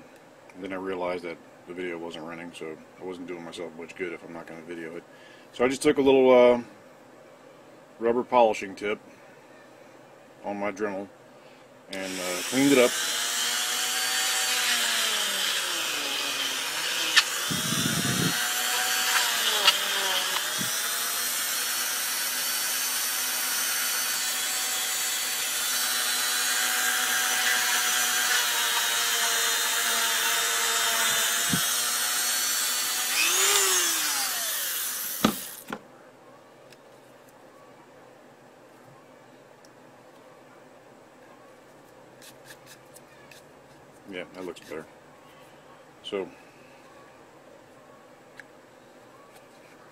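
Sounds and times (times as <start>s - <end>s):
rotary tool whining on plastic: 12.4s - 35.8s.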